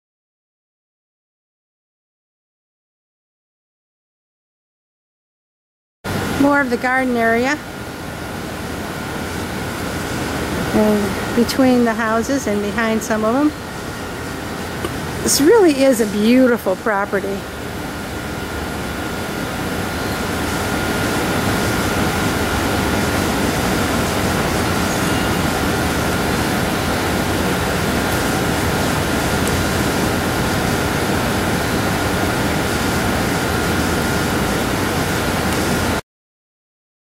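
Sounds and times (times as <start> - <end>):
thin high whine: 6.1 - 36.0.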